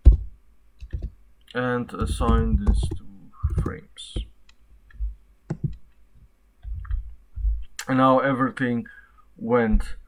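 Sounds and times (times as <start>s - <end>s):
keyboard and mouse clicks: 0.0s - 1.2s, 1.9s - 6.0s
low dull thumps: 2.0s - 4.3s, 4.9s - 7.7s.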